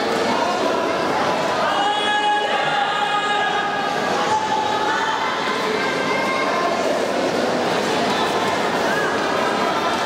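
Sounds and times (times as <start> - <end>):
crowd noise in large hall: 0.0 - 10.0.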